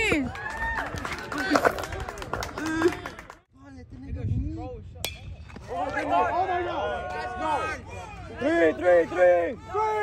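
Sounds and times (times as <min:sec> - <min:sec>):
metal bat hitting ball: 0:05.0 - 0:05.6
voices shouting and cheering: 0:05.6 - 0:10.0.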